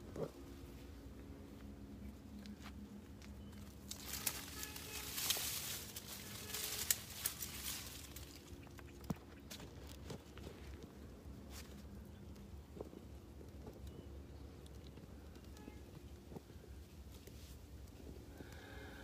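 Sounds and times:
faint low hum: 0.0 - 19.0
rustling and scraping on rock: 3.6 - 11.9.

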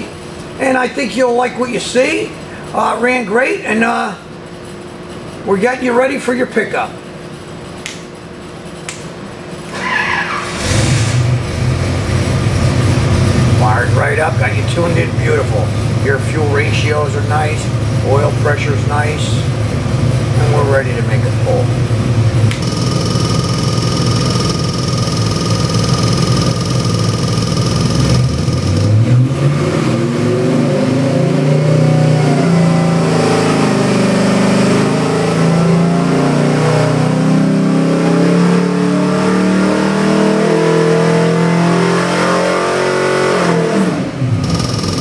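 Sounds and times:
engine running and revving: 10.4 - 45.0.

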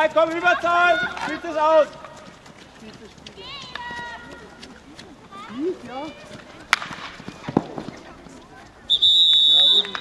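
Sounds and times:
hockey sticks clicking on ball: 6.7 - 8.4.

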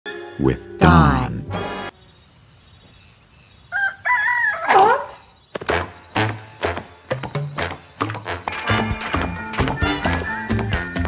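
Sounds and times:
rooster-like crow: 3.7 - 5.2.

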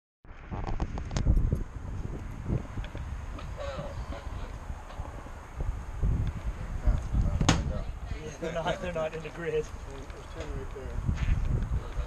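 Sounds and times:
wind rumble on microphone: 0.3 - 12.0
faint men talking: 6.6 - 12.0.

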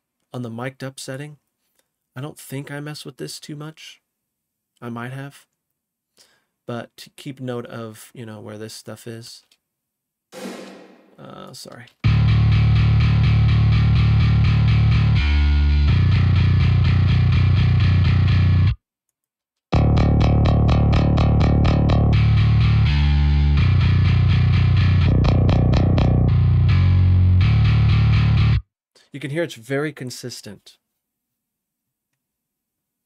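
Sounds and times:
distorted metal bass riff: 12.0 - 18.8, 19.8 - 28.6.

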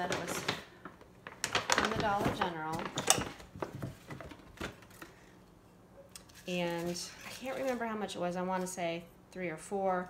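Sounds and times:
paper bag and tissue rustling: 0.0 - 5.2, 6.3 - 8.8.

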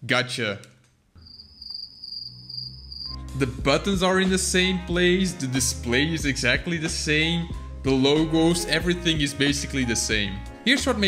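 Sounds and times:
cricket chirping trill: 1.2 - 3.2.

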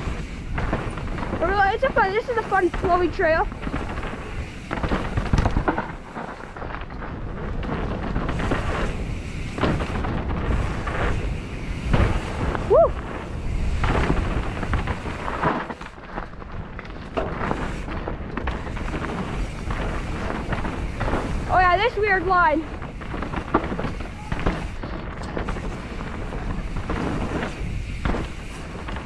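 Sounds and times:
bike rattling and knocking: 0.0 - 29.0
tyres rumbling over dirt: 0.0 - 29.0
wind buffeting microphone: 0.0 - 29.0.

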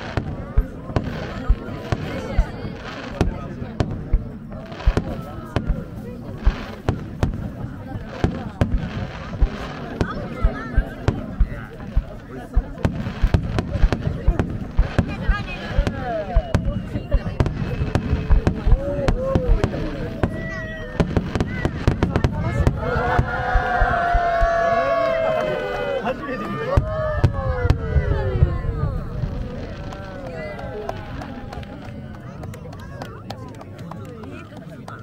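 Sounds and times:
firework bangs and crackling: 0.0 - 35.0
spectators exclaiming: 18.1 - 33.3.

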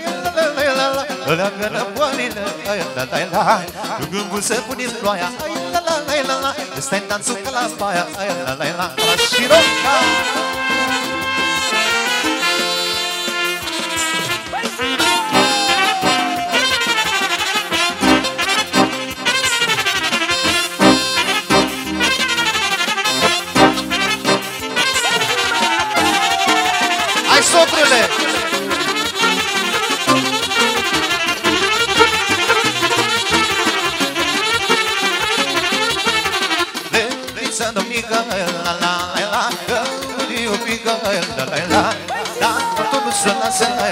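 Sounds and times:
live band playing folk dance music: 0.0 - 43.9
brass lead: 8.9 - 37.3.

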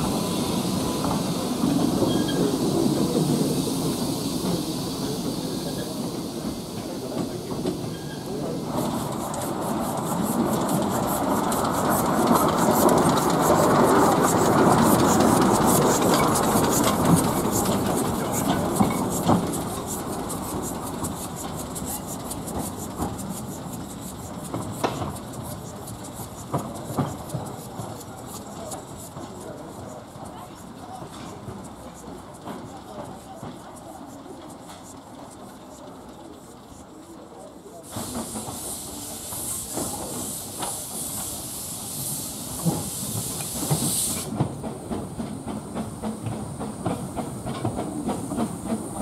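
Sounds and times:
steam locomotive running past: 0.0 - 49.0.

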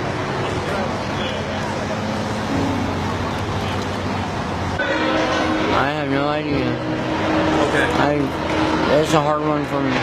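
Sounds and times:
traffic: 0.0 - 10.0.

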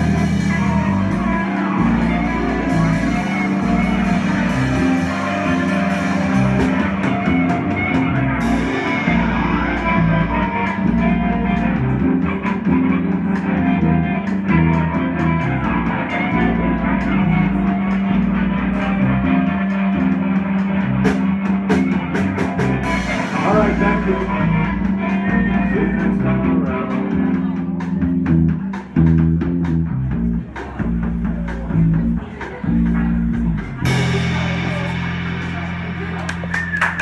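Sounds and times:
bass guitar: 0.0 - 37.0
electric guitar: 0.0 - 37.0
drum and cymbal hits: 27.4 - 37.0.

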